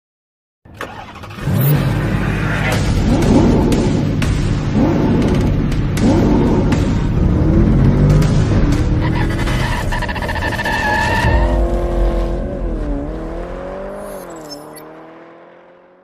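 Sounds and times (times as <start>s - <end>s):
car engine revving: 0.8s - 16.0s.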